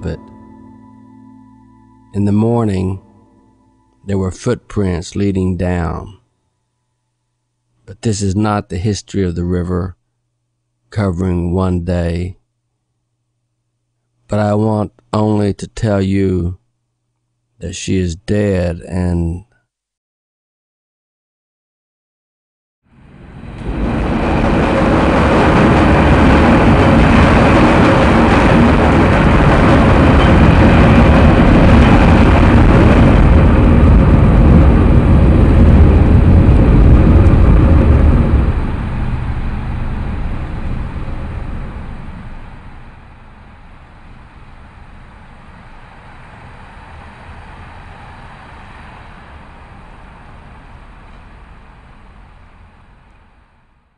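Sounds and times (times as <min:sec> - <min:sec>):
train rumbling over steel bridge: 0:23.0 - 0:53.6.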